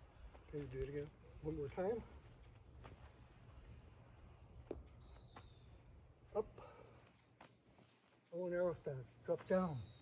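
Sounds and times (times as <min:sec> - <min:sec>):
faint thin high whistle: 0:05.0 - 0:05.7.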